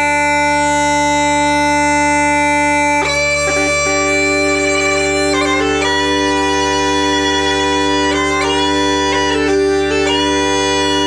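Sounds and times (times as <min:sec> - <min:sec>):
bagpipe music: 0:00.0 - 0:11.0.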